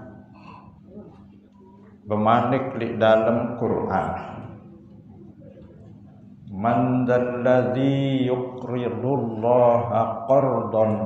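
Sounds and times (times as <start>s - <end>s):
man chanting melodic recitation: 2.1s - 4.5s, 6.5s - 11.0s.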